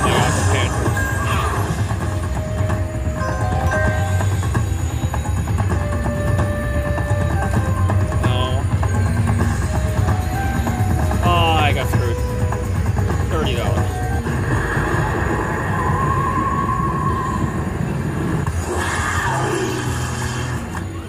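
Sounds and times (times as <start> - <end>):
slot machine music and tones: 0.0 - 14.8
low casino hum: 0.0 - 21.0.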